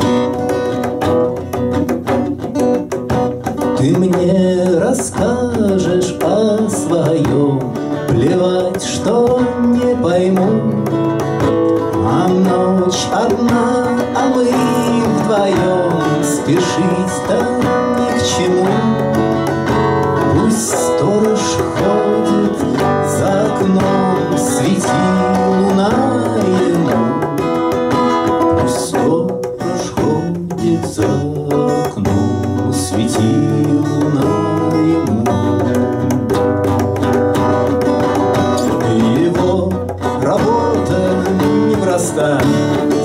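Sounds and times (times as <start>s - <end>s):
acoustic guitar accompaniment: 0.0s - 43.0s.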